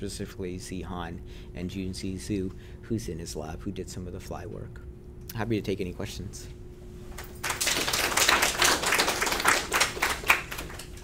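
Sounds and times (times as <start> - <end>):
audience applauding: 7.4 - 11.0.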